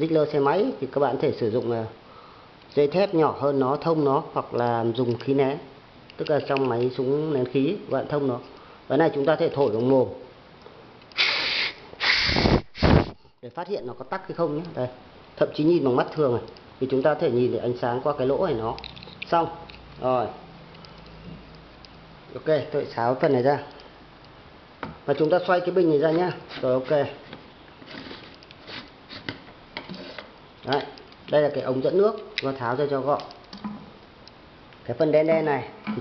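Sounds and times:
puffs of breath through nozzle: 11.2 - 13.2.

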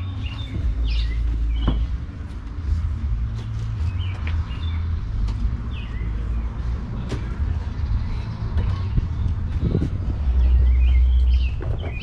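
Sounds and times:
small birds chirping: 0.0 - 2.2, 3.4 - 12.0
strong low rumble: 0.0 - 12.0.

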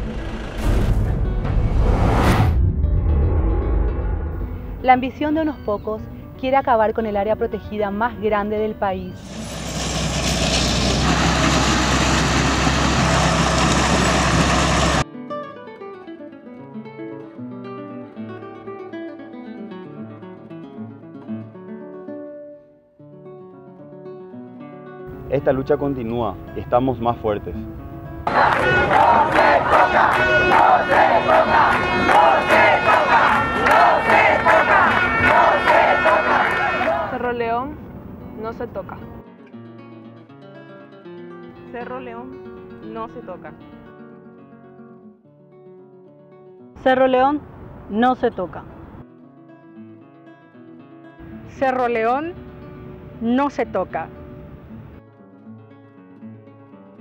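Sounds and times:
large engine running: 0.0 - 1.7, 9.2 - 15.0
crowd shouting and chanting: 28.2 - 37.4.

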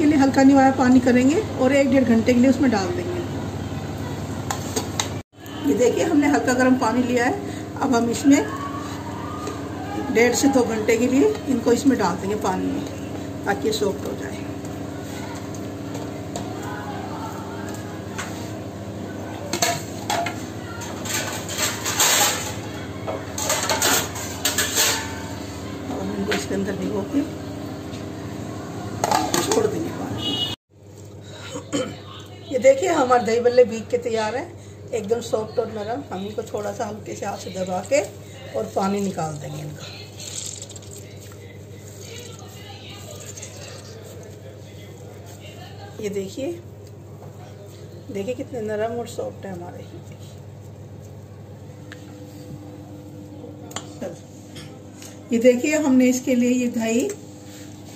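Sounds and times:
bowl and plate clattering: 19.5 - 25.3.

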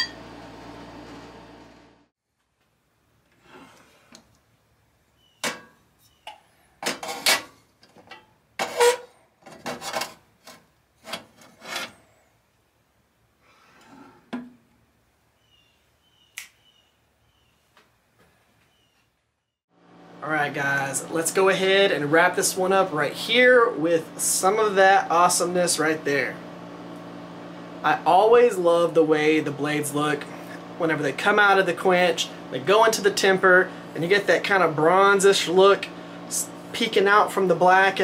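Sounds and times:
metal clanks and scrapes: 6.8 - 12.0.

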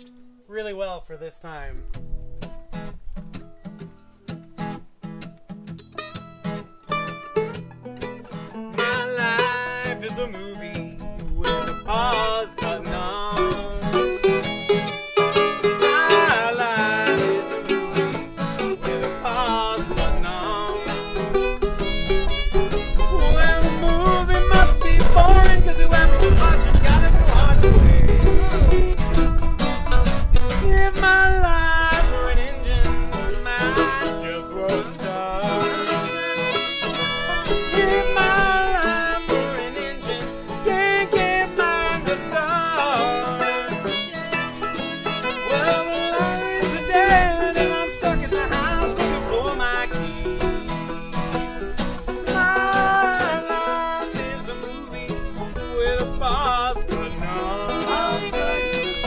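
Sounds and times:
acoustic string band playing blues: 1.9 - 59.0
fiddle bending notes: 5.6 - 59.0.

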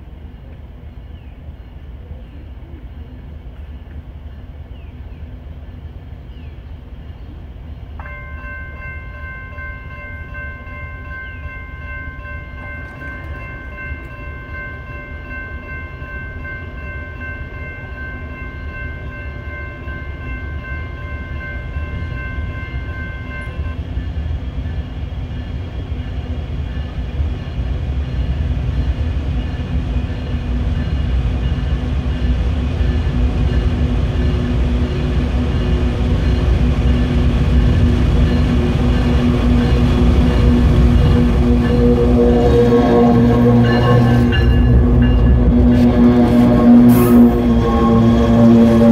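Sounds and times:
train low rumble: 0.0 - 48.9
chord of high tones: 38.2 - 48.9.

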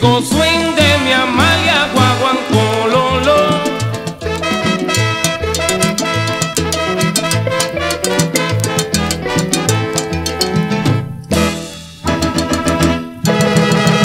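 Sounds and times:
repeating bass line: 0.0 - 14.0
salsa band playing: 0.0 - 14.0.

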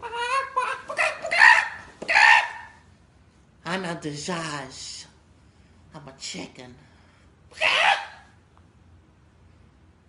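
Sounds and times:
man imitating chicken squawk: 7.6 - 8.3.

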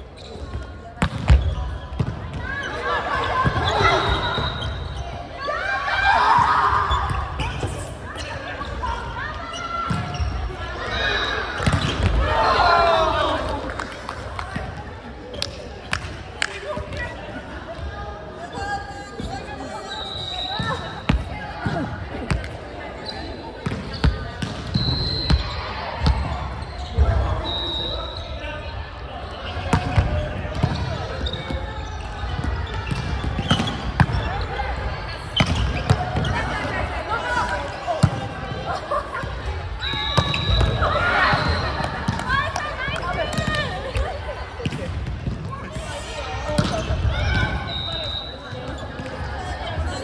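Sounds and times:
players shouting: 2.4 - 13.8, 33.4 - 50.0.

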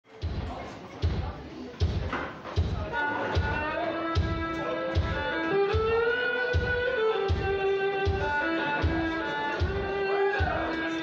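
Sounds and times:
kick drum thumps: 0.2 - 3.6, 4.2 - 10.7.

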